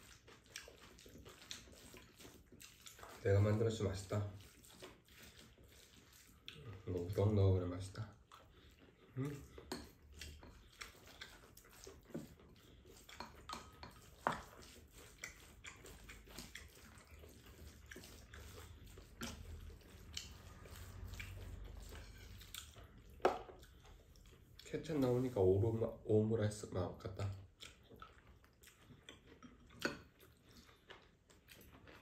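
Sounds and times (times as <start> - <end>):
chewing: 0.0 - 26.0, 27.0 - 32.0.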